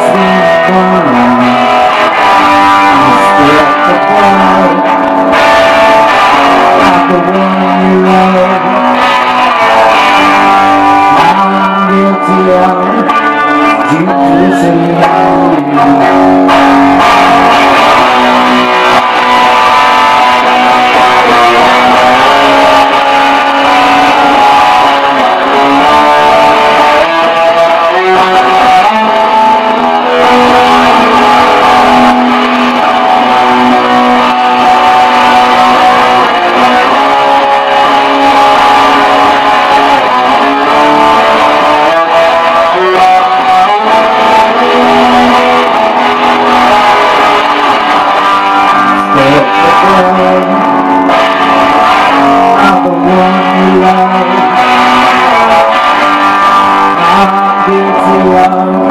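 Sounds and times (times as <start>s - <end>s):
distorted electric guitar: 0.0s - 58.9s.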